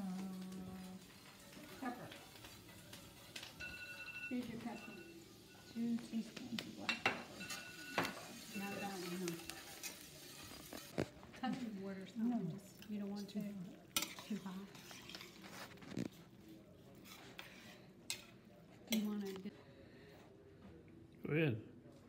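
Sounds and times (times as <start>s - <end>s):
faint sizzle: 0.0s - 20.2s
spoon clinking against pan: 2.2s - 5.7s, 6.6s - 10.9s, 14.0s - 14.4s.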